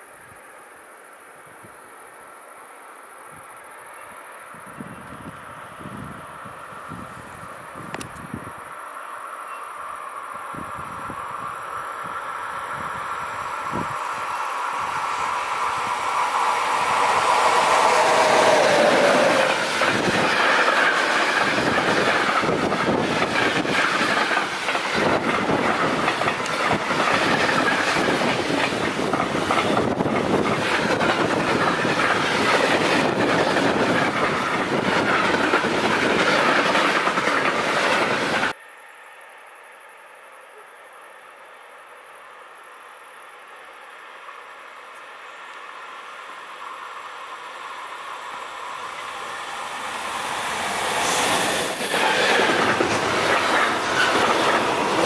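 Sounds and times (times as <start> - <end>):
locomotive passing: 4.2 - 38.6, 44.1 - 55.0
train wheels clattering on rails: 14.7 - 38.6, 48.8 - 55.0.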